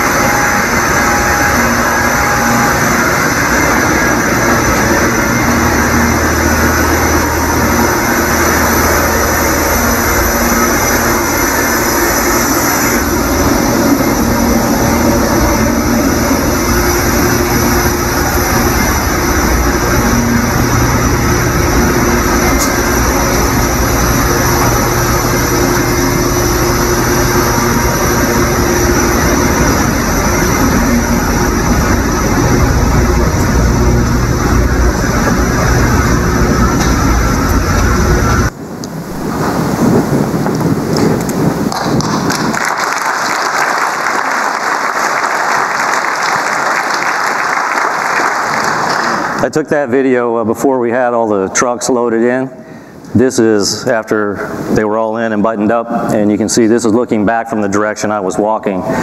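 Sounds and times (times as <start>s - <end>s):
machine-like roar: 0.0s - 53.6s, 57.3s - 59.0s
low hum: 0.0s - 59.0s.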